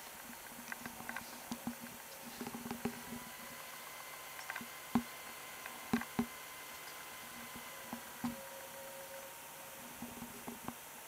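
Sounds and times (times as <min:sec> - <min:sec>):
steady low hiss: 0:00.0 - 0:11.0
computer mouse clicks: 0:04.3 - 0:08.4.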